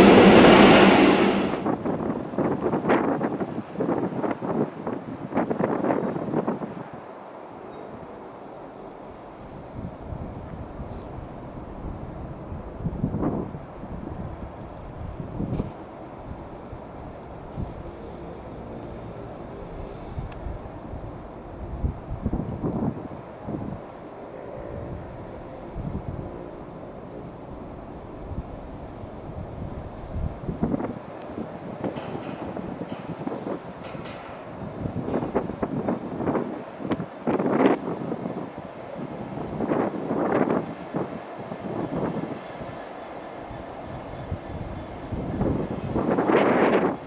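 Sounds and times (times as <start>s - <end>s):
diesel locomotive running: 0.0s - 2.1s, 8.9s - 47.0s
wind buffeting microphone: 0.0s - 7.0s, 9.4s - 47.0s.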